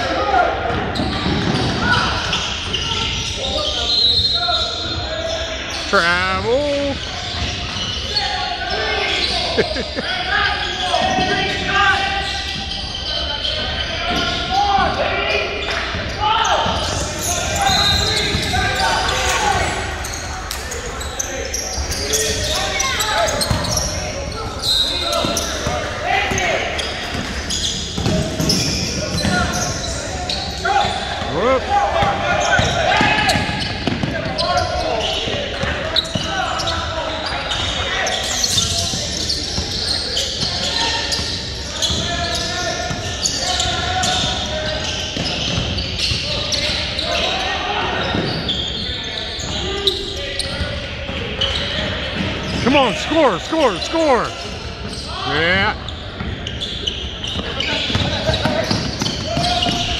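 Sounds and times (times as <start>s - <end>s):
voices calling out: 5.0s - 14.6s, 52.5s - 55.8s.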